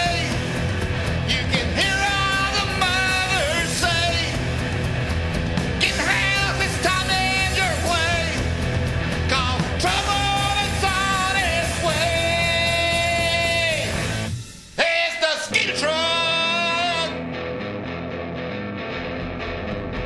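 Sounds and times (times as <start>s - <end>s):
singer: 0.0s - 0.5s, 1.3s - 4.4s, 5.8s - 8.5s, 9.2s - 14.1s, 14.8s - 17.2s
rock band playing: 0.0s - 20.0s.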